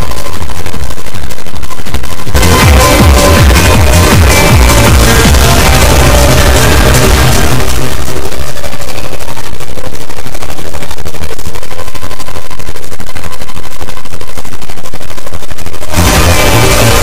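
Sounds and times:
electronic beat with heavy bass: 0:00.0 - 0:12.6, 0:15.8 - 0:17.0
fast distorted drum hits: 0:00.0 - 0:17.0.

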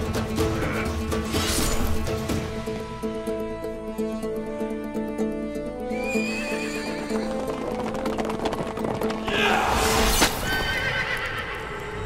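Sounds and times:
background music: 0:00.0 - 0:12.0
horse hoofbeats: 0:05.4 - 0:09.7
horse whinny: 0:05.9 - 0:07.6, 0:09.2 - 0:12.0.

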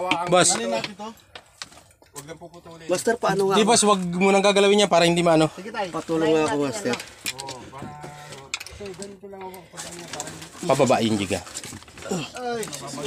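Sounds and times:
voices murmuring and talking: 0:00.0 - 0:13.0.

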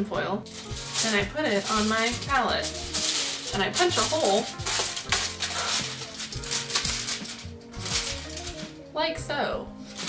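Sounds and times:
background music with bass line: 0:00.0 - 0:10.0
aluminium foil crinkling: 0:00.4 - 0:08.9, 0:09.8 - 0:10.0.

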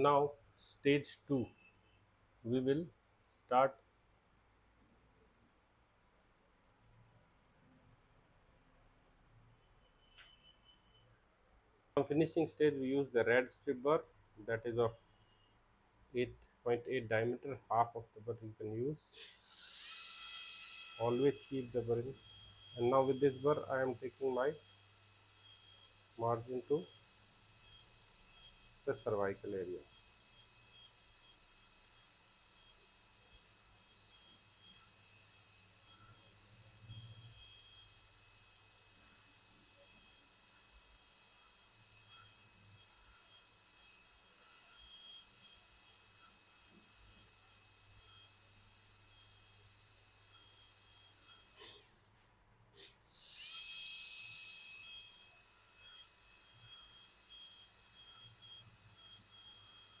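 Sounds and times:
dental drill high whine: 0:09.7 - 0:11.1, 0:19.1 - 0:52.1, 0:52.8 - 1:00.0.

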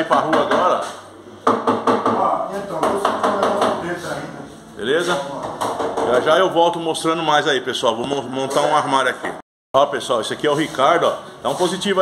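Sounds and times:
men talking indistinctly: 0:02.1 - 0:12.0.

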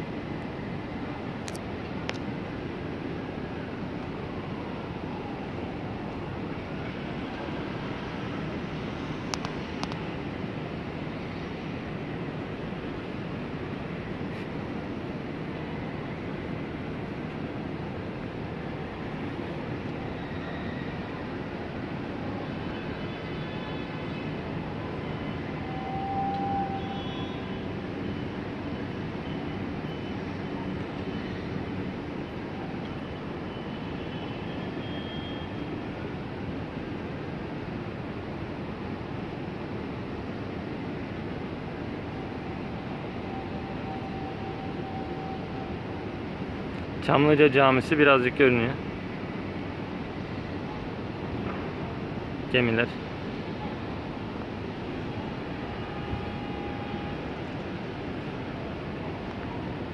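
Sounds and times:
distant traffic hum: 0:00.0 - 0:59.9.

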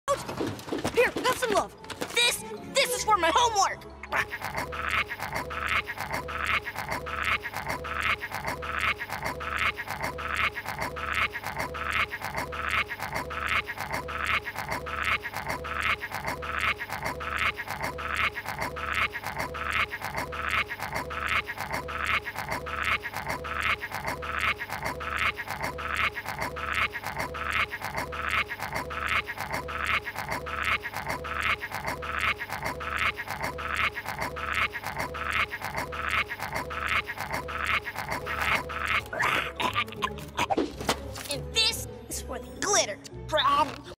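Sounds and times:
cartoon chewing sound effect: 0:04.0 - 0:40.6.

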